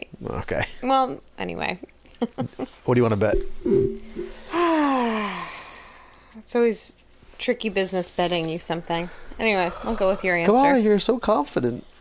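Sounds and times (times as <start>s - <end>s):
person sighing ohh: 4.3s - 5.9s.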